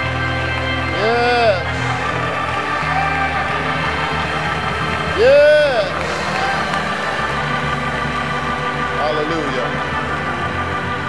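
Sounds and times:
sustained gospel music chords: 0.0s - 11.0s.

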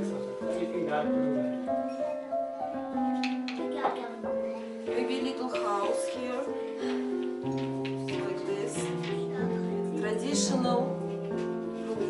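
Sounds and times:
slow held-note music: 0.0s - 12.0s.

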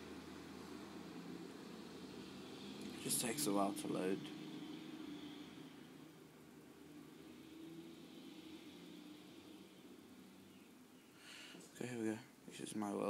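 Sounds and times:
weak low hum: 0.0s - 12.3s.

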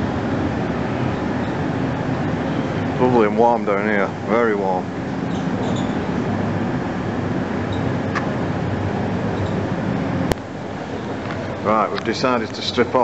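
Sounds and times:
air blowers rushing and humming: 0.0s - 13.0s.

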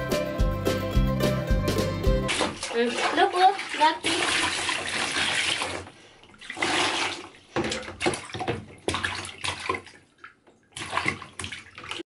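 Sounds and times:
bath water splashing: 2.2s - 12.0s.

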